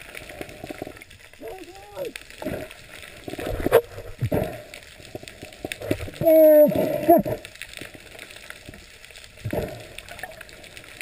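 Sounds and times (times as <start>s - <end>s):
fine crackle of clicks in water: 0.0s - 11.0s
muffled voice underwater: 1.4s - 2.2s, 6.1s - 7.4s.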